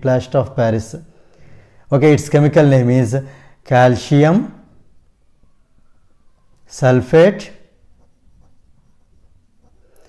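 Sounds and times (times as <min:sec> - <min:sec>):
pen scratching on paper: 0:07.9 - 0:10.0.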